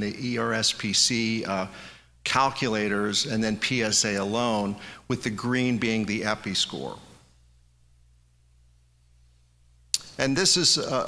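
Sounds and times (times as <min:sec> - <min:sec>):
speech: 0:00.0 - 0:01.7, 0:02.3 - 0:07.1, 0:10.0 - 0:11.0
faint low hum: 0:00.0 - 0:11.0.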